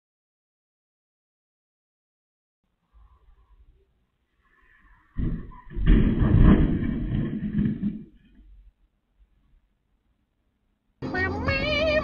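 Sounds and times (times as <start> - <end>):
crunching and scraping: 4.9 - 8.7
car crashing into fence: 5.2 - 8.3.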